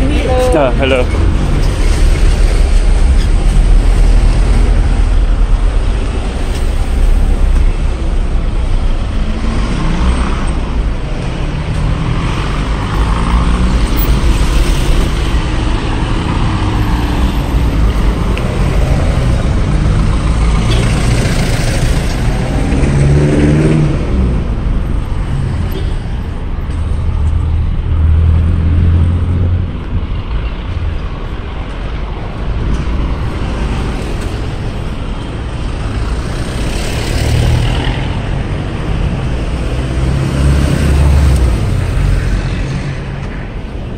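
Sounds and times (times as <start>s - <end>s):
vehicle accelerating: 0.0s - 25.7s, 35.8s - 43.3s
car engines rumbling: 0.0s - 43.9s.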